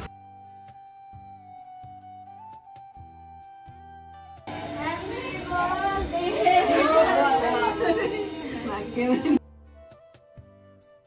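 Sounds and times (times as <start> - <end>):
people talking and exclaiming: 4.5 - 9.4.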